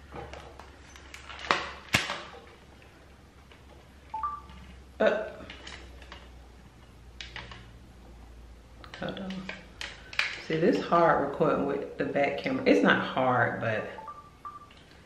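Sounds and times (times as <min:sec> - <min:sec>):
electronic two-tone beep: 0:04.2 - 0:04.6, 0:13.8 - 0:14.7.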